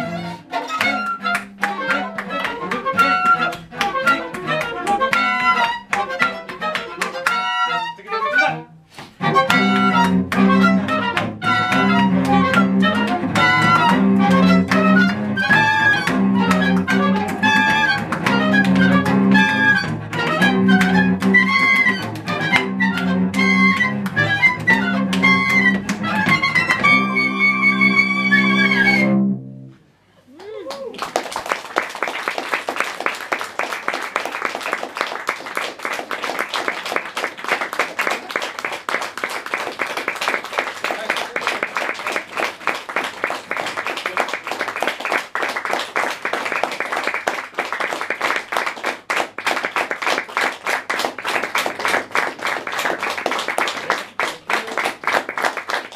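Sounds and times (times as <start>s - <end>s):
audience applause: 0.6s - 7.5s, 9.3s - 27.0s, 30.3s - 55.9s.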